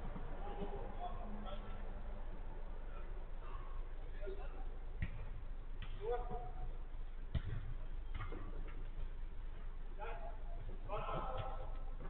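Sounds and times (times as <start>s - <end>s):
steady low hum: 0.0s - 12.0s
football knocks: 7.3s - 8.7s.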